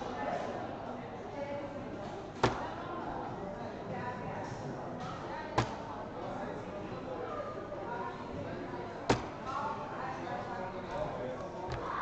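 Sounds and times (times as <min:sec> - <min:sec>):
background chatter: 0:00.0 - 0:12.0
dart hitting dartboard: 0:02.4 - 0:02.7, 0:05.6 - 0:05.8, 0:09.1 - 0:09.4.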